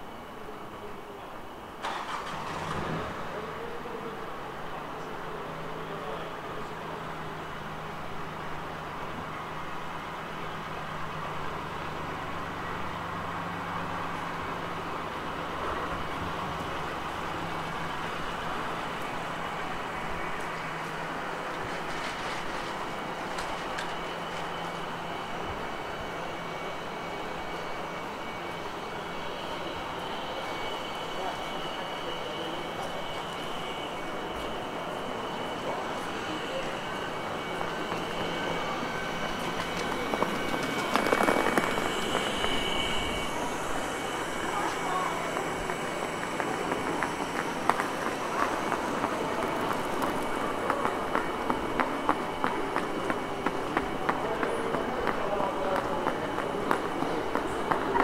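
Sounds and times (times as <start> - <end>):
distant traffic hum: 0.0 - 58.0
passers-by: 1.7 - 58.0
car engine running nearby: 1.8 - 25.5.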